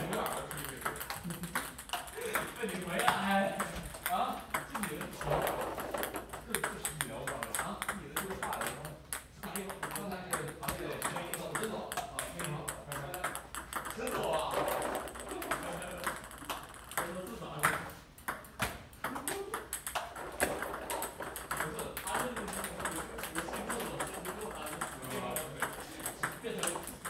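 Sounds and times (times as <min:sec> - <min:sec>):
table tennis balls clicking: 0:00.0 - 0:27.0.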